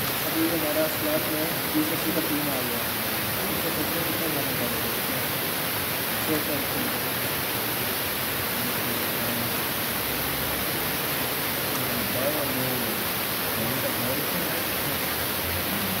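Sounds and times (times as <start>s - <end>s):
steady hiss: 0.0s - 16.0s
faint indistinct voices: 11.6s - 16.0s.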